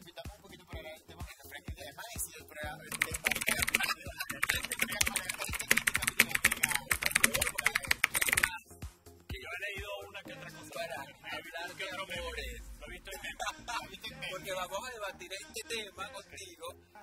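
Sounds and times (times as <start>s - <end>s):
background music: 0.0s - 17.0s
voices: 1.6s - 8.6s, 9.4s - 16.6s
computer keyboard typing: 2.8s - 8.5s.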